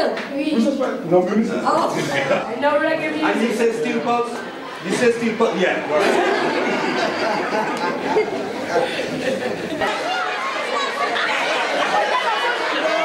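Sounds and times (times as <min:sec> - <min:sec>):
children chattering: 0:01.7 - 0:13.0.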